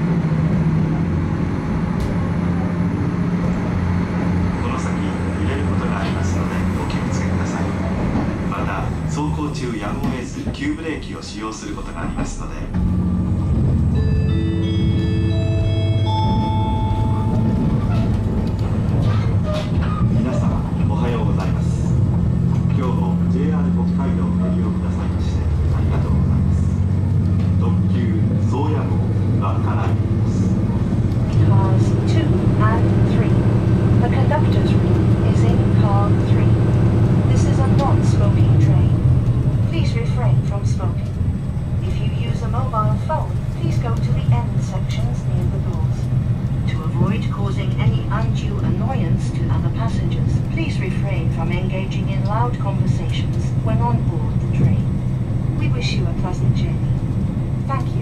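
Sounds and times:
railcar engine drone: 0:00.0 - 0:58.0
rising multi-note chime: 0:13.8 - 0:17.5.

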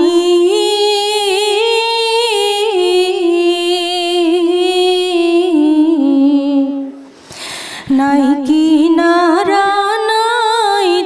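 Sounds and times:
woman singing unaccompanied: 0:00.0 - 0:07.0, 0:07.9 - 0:11.0.

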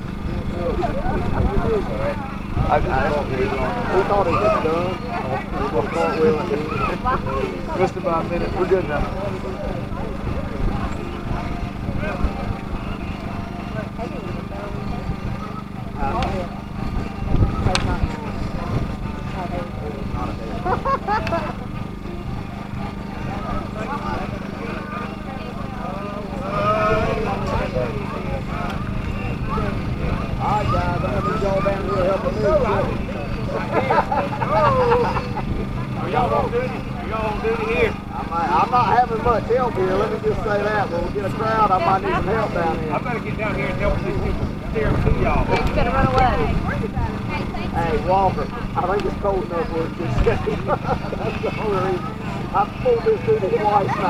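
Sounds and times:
people talking indistinctly: 0:00.0 - 0:54.0.

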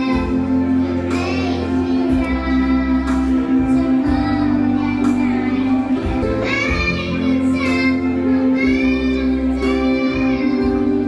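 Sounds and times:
electronic keyboard accompaniment: 0:00.0 - 0:11.0
girl singing into a microphone: 0:00.0 - 0:11.0.

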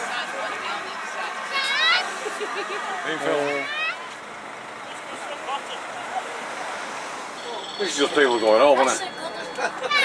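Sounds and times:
vehicle engine running: 0:00.0 - 0:10.0.

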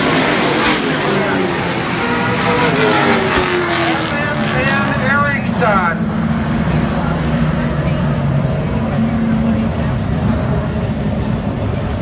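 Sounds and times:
race car engines rumbling: 0:00.0 - 0:12.0.

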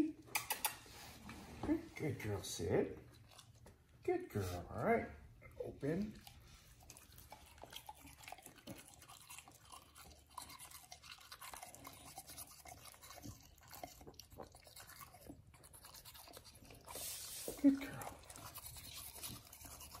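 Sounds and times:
toothbrush scrubbing teeth: 0:05.8 - 0:20.0.

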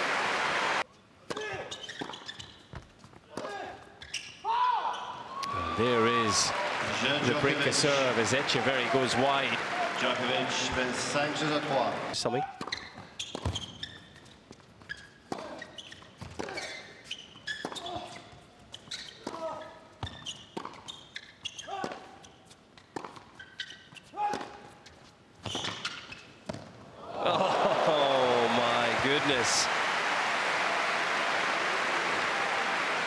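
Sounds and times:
crowd cheering and applause: 0:00.0 - 0:00.8, 0:05.3 - 0:12.2, 0:27.0 - 0:33.0
shoe squeaks: 0:01.5 - 0:03.0, 0:04.0 - 0:05.2, 0:12.6 - 0:24.2, 0:24.8 - 0:26.5.

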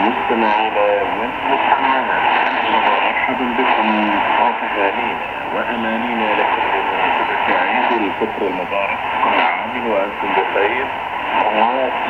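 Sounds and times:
radio voice through speaker: 0:00.0 - 0:12.0.

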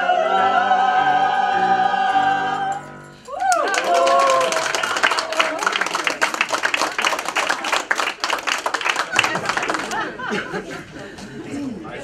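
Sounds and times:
crowd applauding: 0:03.3 - 0:10.6.

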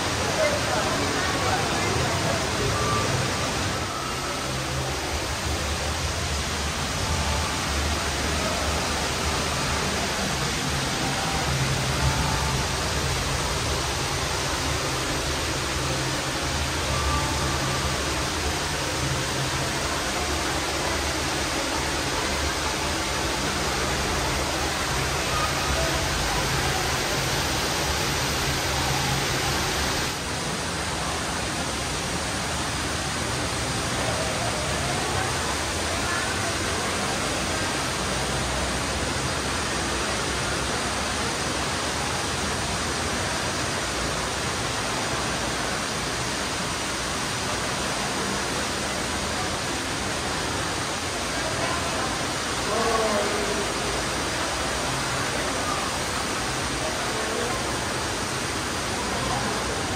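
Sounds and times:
rushing indoor background noise: 0:00.0 - 0:59.9
faint short high tones: 0:01.5 - 0:04.9.

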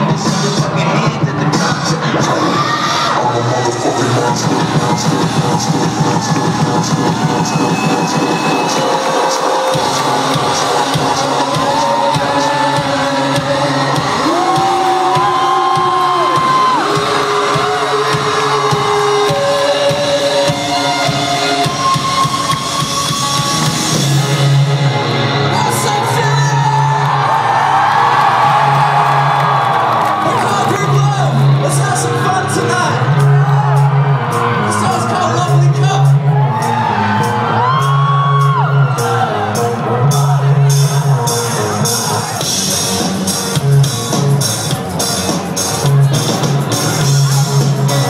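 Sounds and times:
crowd cheering: 0:00.0 - 0:48.0.

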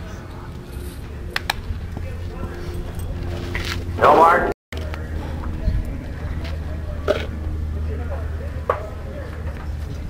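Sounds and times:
faint distant voices: 0:00.0 - 0:10.0
steady low hum: 0:00.0 - 0:10.0.

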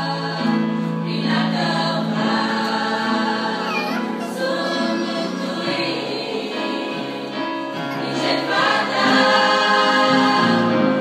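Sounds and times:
girls' choir singing a hymn: 0:00.0 - 0:11.0.

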